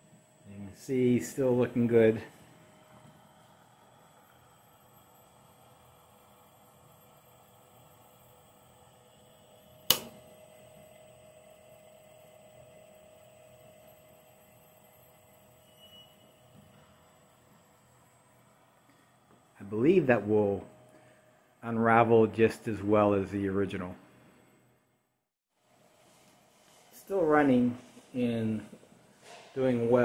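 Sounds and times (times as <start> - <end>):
wire winding machine hum: 0.0 - 22.3
sharp click: 9.9 - 10.2.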